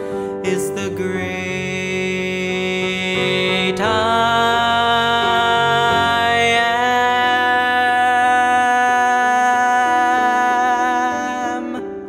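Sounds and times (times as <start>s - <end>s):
piano accompaniment: 0.0s - 12.0s
man singing long note: 0.4s - 12.0s.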